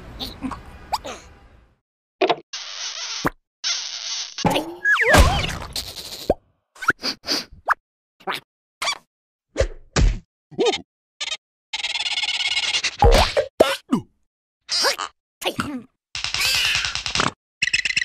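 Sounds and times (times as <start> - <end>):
cartoon whacks and plops: 4.5 - 5.8
gliding squeaks and yelps: 10.6 - 13.2, 16.3 - 18.0.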